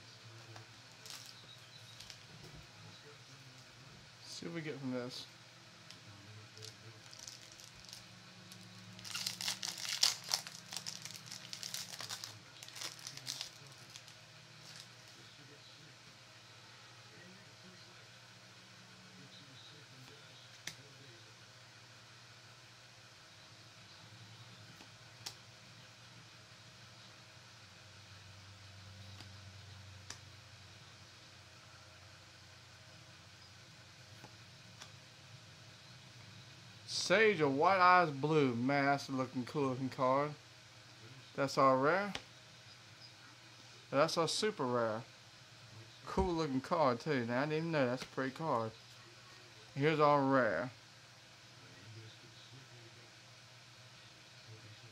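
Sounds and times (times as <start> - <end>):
faint steady hum: 0.0 - 54.9
foil wrapper tearing and crinkling: 0.9 - 2.3, 6.6 - 15.1.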